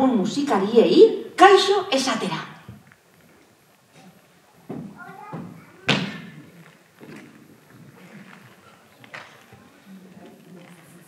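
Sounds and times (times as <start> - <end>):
thumps ringing in large hall: 4.6 - 7.5.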